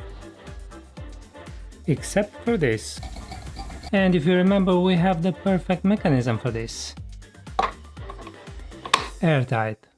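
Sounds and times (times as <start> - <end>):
background music: 0.0 - 9.9
plastic knock: 7.6 - 9.1.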